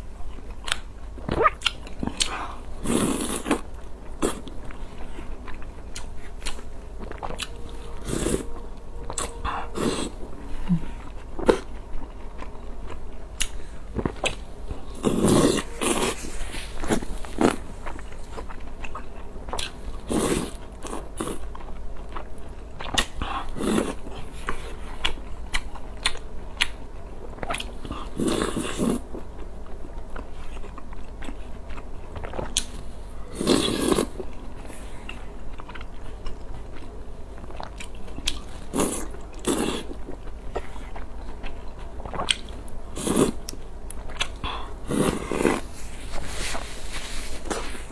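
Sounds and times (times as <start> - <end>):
person chewing with wet smacks: 0.2 - 16.2, 16.8 - 32.8, 33.4 - 45.8
person slurping noodles: 2.8 - 3.6, 14.9 - 17.6, 33.3 - 34.2, 43.0 - 43.4, 44.8 - 45.7
person biting and chewing: 5.4 - 8.4.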